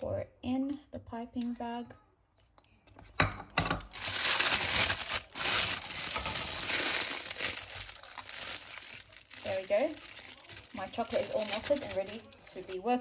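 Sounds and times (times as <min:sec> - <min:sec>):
plastic piping bag crinkling: 0:03.8 - 0:13.0.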